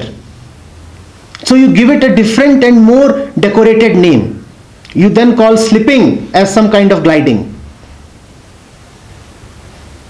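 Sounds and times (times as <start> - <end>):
faint low hum: 0.0 - 10.0
room tone hiss: 0.0 - 10.0.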